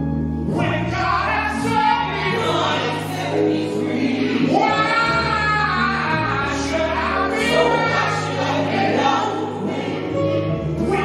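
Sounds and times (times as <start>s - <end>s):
low instrumental backing: 0.0s - 11.0s
choir singing in harmony: 0.5s - 11.0s.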